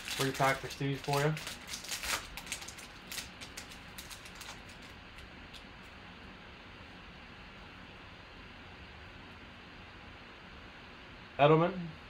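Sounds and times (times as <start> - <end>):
foil wrapper crinkling: 0.0 - 5.6.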